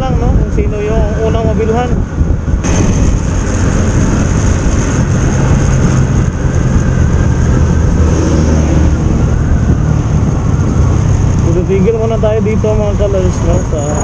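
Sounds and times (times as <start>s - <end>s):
motorcycle engine drone: 0.0s - 14.0s
wind rush on microphone: 0.0s - 14.0s.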